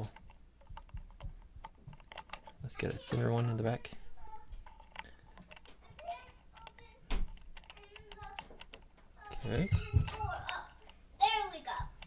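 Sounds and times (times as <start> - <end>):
metal lock-picking tools clicking: 0.0 - 2.6, 4.6 - 8.9.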